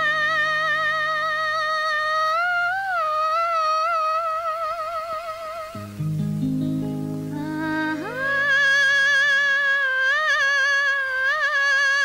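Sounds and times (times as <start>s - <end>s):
low accompanying instruments: 4.2s - 12.0s
woman humming high note: 6.8s - 12.0s.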